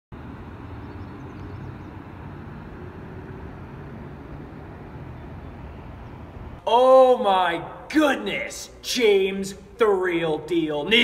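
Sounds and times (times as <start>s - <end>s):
distant city traffic rumble: 0.1s - 11.0s.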